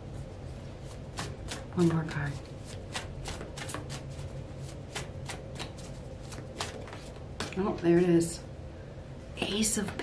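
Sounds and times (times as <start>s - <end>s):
cards being shuffled: 0.8s - 7.6s.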